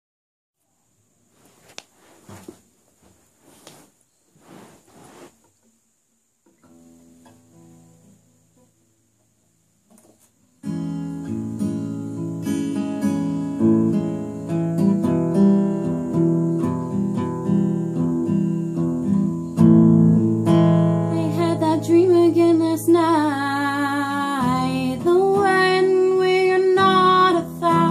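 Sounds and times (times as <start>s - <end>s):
soft rustles and knocks: 1.3s - 5.7s
acoustic guitar picking: 10.6s - 27.9s.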